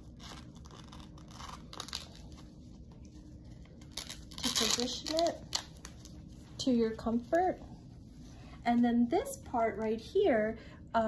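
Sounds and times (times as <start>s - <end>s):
velcro strap tearing: 0.0s - 2.5s, 3.8s - 6.2s.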